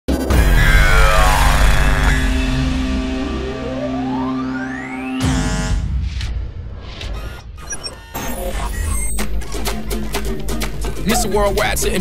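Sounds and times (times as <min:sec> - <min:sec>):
synth tone sweeping upward: 0:00.3 - 0:06.0
loud hit with falling pitch: 0:00.3 - 0:07.0.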